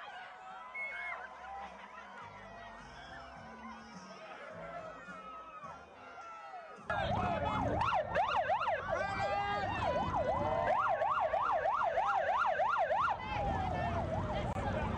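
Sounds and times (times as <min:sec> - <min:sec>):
crowd and traffic rumble: 0:00.0 - 0:14.9
police siren yelping: 0:06.9 - 0:14.9.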